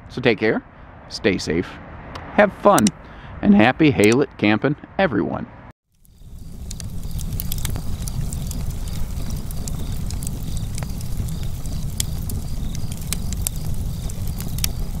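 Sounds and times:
wood fire crackling: 5.9 - 15.0.

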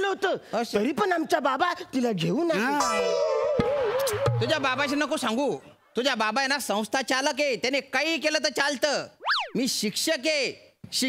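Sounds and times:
comic boing sound effect: 2.8 - 4.6
man talking: 4.1 - 11.0.

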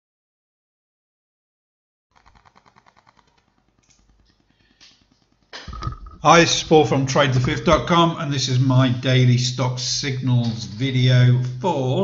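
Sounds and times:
faint rapid clicks: 2.2 - 6.1.

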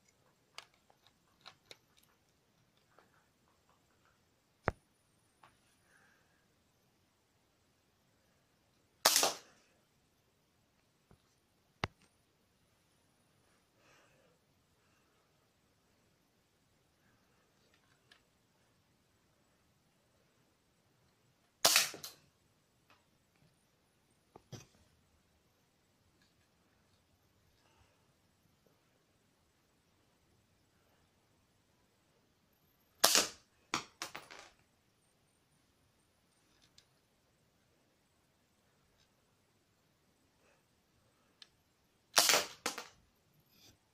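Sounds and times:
toy gun firing plastic clatter: 9.0 - 9.5, 21.6 - 22.2, 33.0 - 34.2, 42.2 - 43.0.

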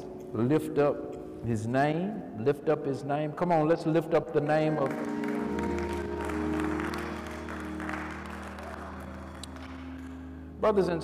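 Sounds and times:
church music with held chords: 3.6 - 11.0
people clapping: 4.8 - 10.4.

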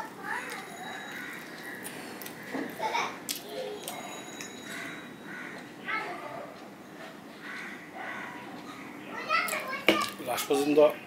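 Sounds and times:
children talking and playing: 0.0 - 11.0.

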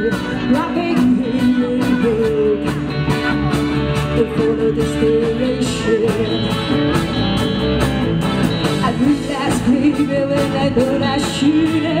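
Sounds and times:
live pop-rock band: 0.0 - 12.0
steady drum beat: 0.0 - 12.0.

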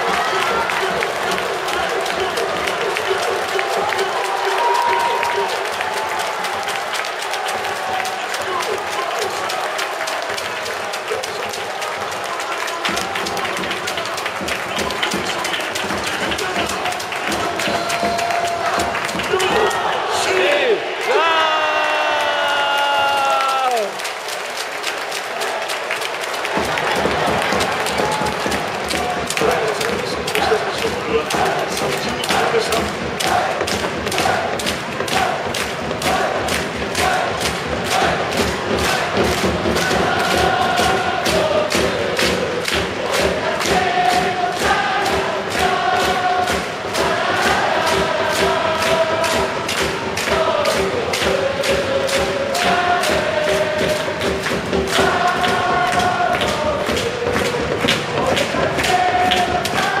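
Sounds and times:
crowd chanting a song: 0.0 - 24.0, 25.5 - 60.0.

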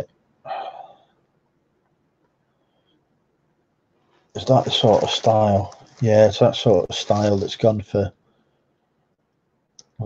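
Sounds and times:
person speaking: 0.0 - 0.9, 4.4 - 8.2.

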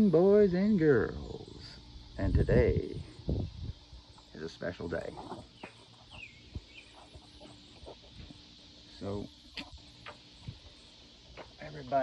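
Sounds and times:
bird chirping: 5.2 - 11.1.

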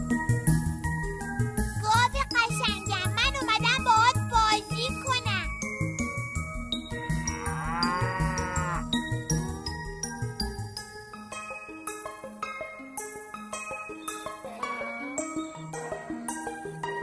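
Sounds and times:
jingly children's music: 0.4 - 17.0
cartoon cow mooing: 7.1 - 8.9.

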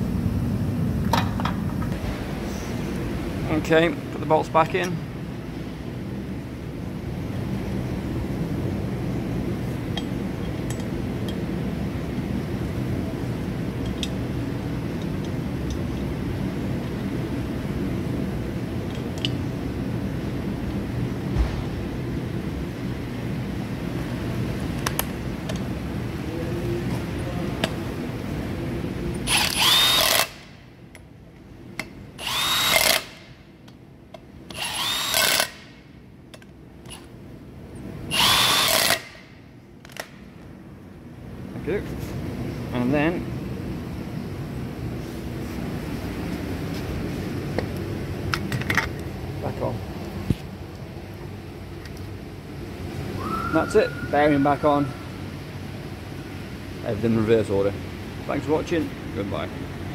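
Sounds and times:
power drill driving bolts: 29.3 - 30.4, 32.2 - 33.2, 34.5 - 35.6, 38.1 - 39.2.

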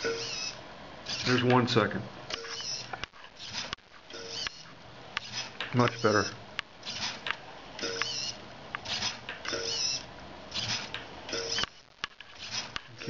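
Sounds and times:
servo whirring: 0.0 - 1.6, 2.4 - 13.0.

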